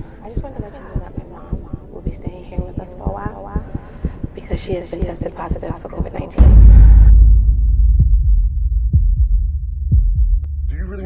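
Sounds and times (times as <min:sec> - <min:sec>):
deep heartbeat pulse: 0:00.4 - 0:11.0
loud low drone: 0:06.4 - 0:11.0.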